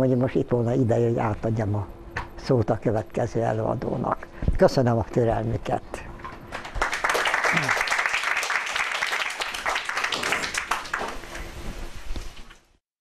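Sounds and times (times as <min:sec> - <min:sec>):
audience applauding: 0:06.5 - 0:11.4.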